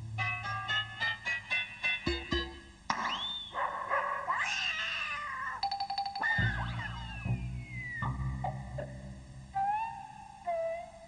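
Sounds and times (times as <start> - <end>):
screeching cartoon cat yowl: 3.6 - 5.6, 6.2 - 8.1.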